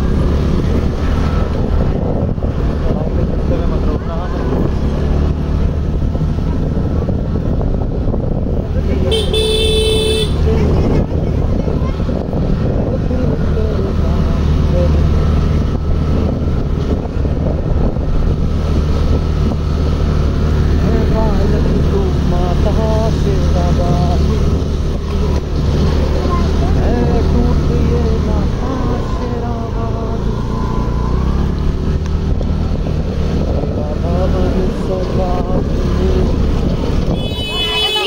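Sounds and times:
motor scooter rumbling: 0.0 - 38.0
scooter horn toot: 9.1 - 10.4, 37.1 - 38.0.

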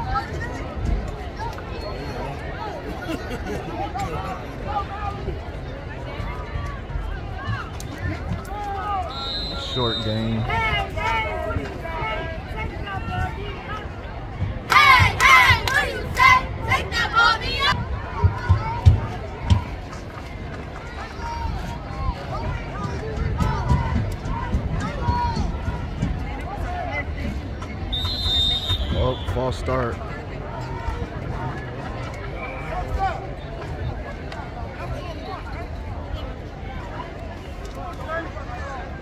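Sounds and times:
spectators chattering: 0.0 - 39.0
loud shout: 14.7 - 18.9.

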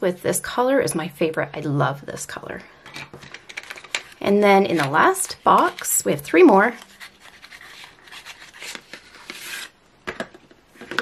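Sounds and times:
pencils shifting: 2.8 - 6.0.

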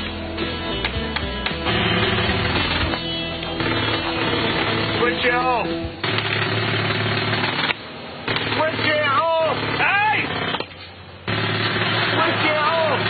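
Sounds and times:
jackhammer hammering: 0.8 - 5.4, 6.0 - 13.0.

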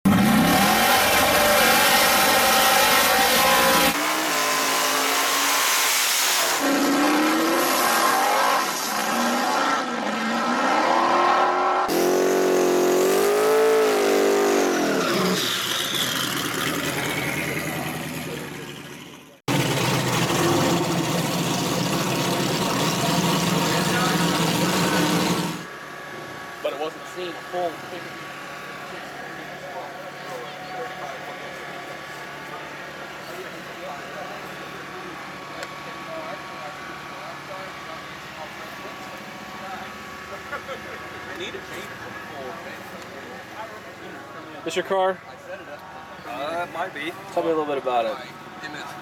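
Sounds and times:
drag car engines revving: 0.0 - 49.0
tire burnout screech: 0.1 - 17.9, 19.5 - 25.7.

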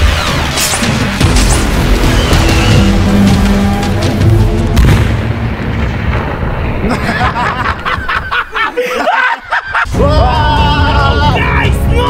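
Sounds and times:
explosion rumble: 0.0 - 8.6
excited voices: 8.3 - 12.0.

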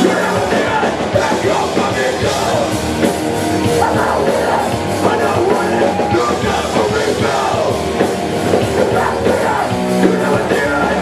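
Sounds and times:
bass guitar: 0.0 - 11.0
distorted electric guitar: 0.0 - 11.0
drum kit: 0.0 - 11.0.

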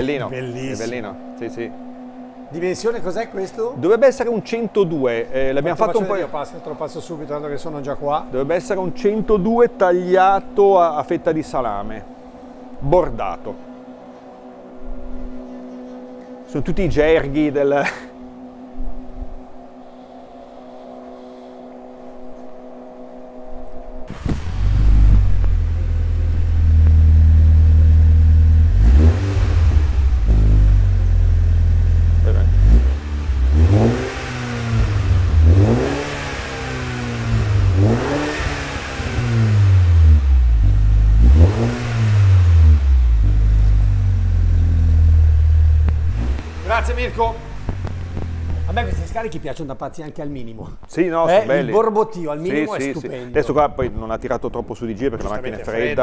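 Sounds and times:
faint steady hum: 0.0 - 41.4
car engine idling with low burble: 0.0 - 49.9
car engine revving in short blips: 24.1 - 49.2.

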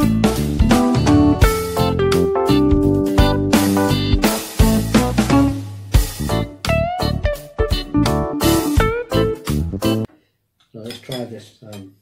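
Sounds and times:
cutlery clinking on plates: 10.8 - 12.0.

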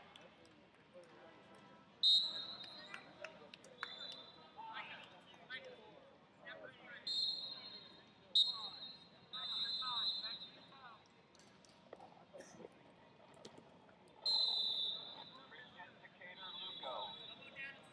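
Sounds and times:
referee's whistle blasts: 2.0 - 2.8, 7.0 - 10.7, 14.2 - 15.4, 16.3 - 17.5.

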